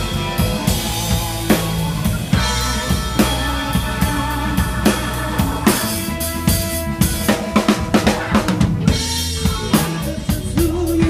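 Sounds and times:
band playing held notes: 0:00.0 - 0:11.0.

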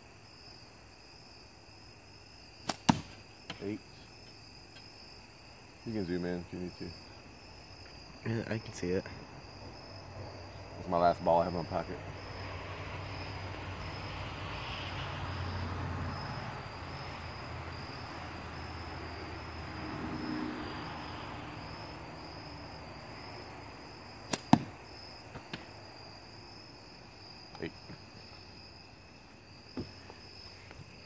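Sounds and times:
crickets chirping: 0:00.0 - 0:31.0
slingshot release snap: 0:24.3 - 0:24.6.

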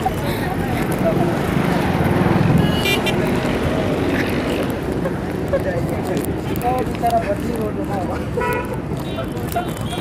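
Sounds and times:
vehicle engines rumbling: 0:00.0 - 0:10.0.

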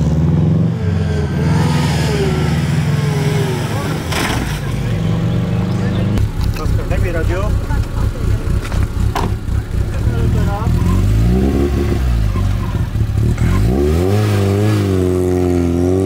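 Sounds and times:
car engine idling and revving: 0:00.0 - 0:16.0.

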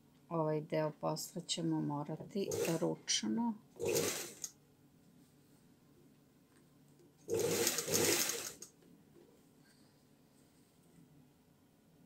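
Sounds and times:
industrial sewing machine stitching: 0:02.5 - 0:02.9, 0:03.8 - 0:04.5, 0:07.3 - 0:08.7.

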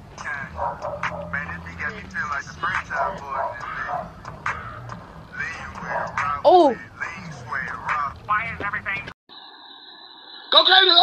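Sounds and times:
person speaking: 0:06.1 - 0:09.1.

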